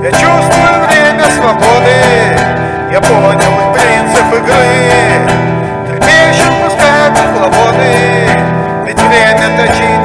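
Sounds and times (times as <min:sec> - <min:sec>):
acoustic guitar strumming: 0:00.0 - 0:10.0
man singing: 0:00.0 - 0:10.0.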